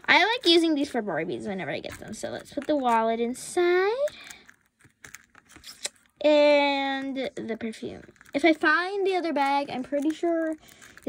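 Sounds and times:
plastic toy pieces clicking: 9.4 - 11.0.

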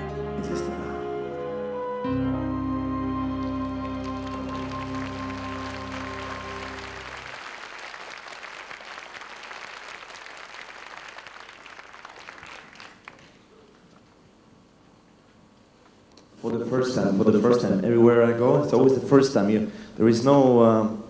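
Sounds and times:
string orchestra chord: 0.0 - 7.3
audience applause: 3.3 - 13.8.

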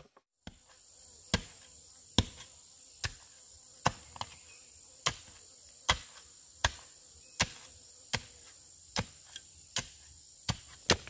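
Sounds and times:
high insect drone: 0.5 - 11.0.

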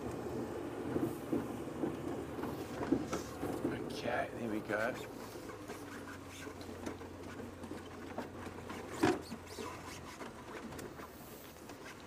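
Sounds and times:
vehicle hum moving slowly: 0.0 - 12.0
faint scrapes and clicks: 4.7 - 12.0.

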